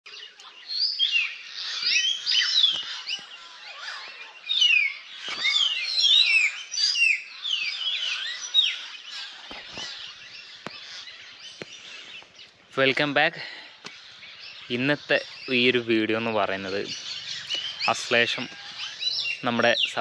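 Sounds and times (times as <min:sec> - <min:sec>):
birds singing: 0:00.1 - 0:20.0.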